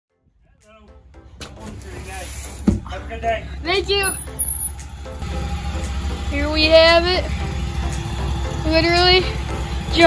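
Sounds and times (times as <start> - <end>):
truck engine rumbling: 1.4 - 10.0.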